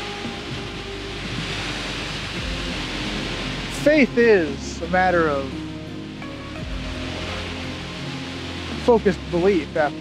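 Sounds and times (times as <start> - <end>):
music of held tones: 0.0 - 10.0
small waves washing on shore: 0.0 - 10.0
wind rushing over microphone: 0.0 - 10.0.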